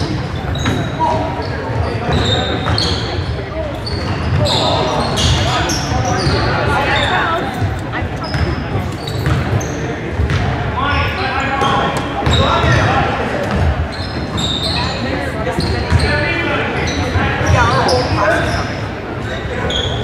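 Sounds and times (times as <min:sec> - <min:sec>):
sneakers squeaking on hardwood: 0:00.0 - 0:20.0
basketball bouncing: 0:08.3 - 0:09.6, 0:10.2 - 0:10.6.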